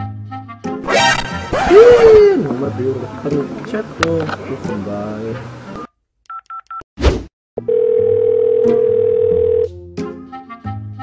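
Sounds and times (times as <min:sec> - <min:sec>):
steady phone tone: 0:07.6 - 0:09.7.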